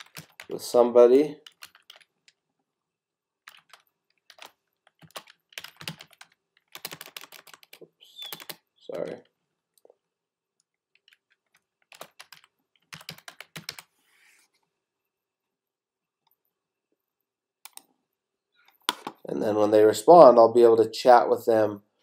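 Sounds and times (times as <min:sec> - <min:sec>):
typing on computer keyboard: 0:00.0 - 0:00.6, 0:01.4 - 0:02.4, 0:03.4 - 0:08.6, 0:10.9 - 0:13.9.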